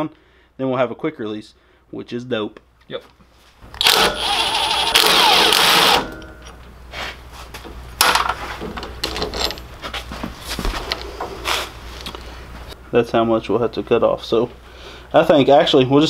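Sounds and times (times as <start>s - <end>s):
cordless drill motor running: 3.8s - 6.1s
loose bolts clinking and rattling: 8.0s - 9.7s.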